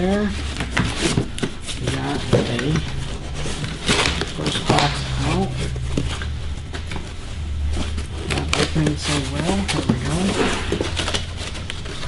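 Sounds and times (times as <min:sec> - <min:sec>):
cardboard scraping and rubbing: 0:00.0 - 0:12.0.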